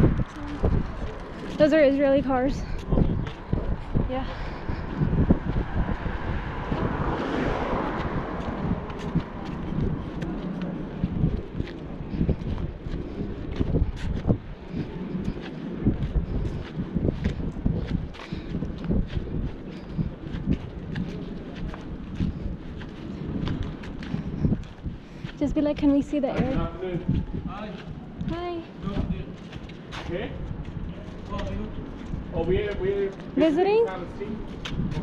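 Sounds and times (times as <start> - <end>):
car passing: 0.0 - 15.8
footsteps on pavement: 0.0 - 35.0
wind buffeting microphone: 0.0 - 35.0.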